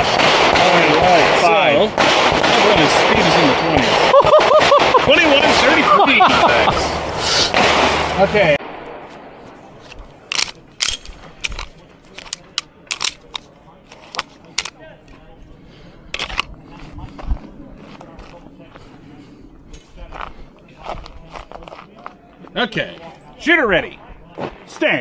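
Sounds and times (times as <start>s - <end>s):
distant pistol gunshots: 0.0s - 5.6s
voices talking: 0.0s - 25.0s.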